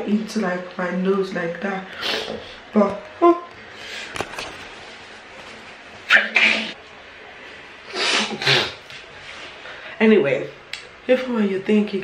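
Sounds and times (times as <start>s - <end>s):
woman sneezing: 7.9s - 8.8s.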